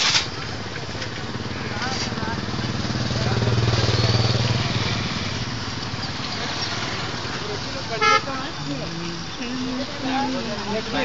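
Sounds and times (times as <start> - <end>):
passing vehicle engine: 0.0 - 11.0.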